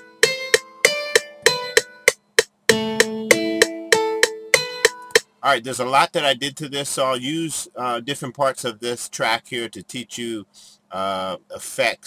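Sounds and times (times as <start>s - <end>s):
plucked-sounding notes: 0.0s - 5.3s.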